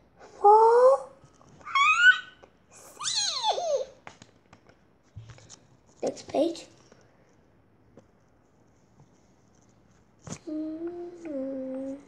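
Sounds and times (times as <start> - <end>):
playful vocal squeals: 0.4 - 4.0.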